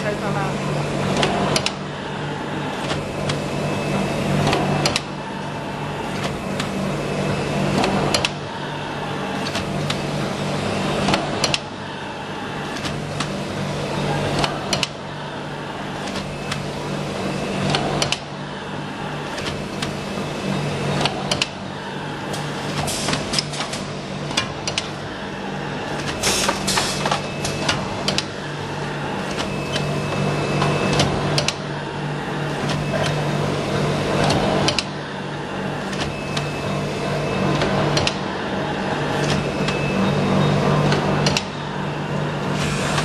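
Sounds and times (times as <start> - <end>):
machine humming: 0.0 - 43.0.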